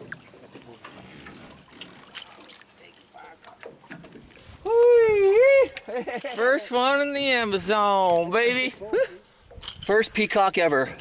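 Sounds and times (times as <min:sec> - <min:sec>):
water sloshing: 0:00.0 - 0:04.6.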